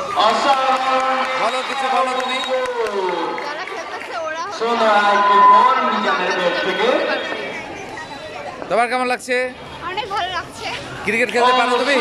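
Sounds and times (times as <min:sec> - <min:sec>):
girls chattering: 0:03.4 - 0:04.8, 0:09.7 - 0:11.1
girl talking: 0:03.5 - 0:04.6.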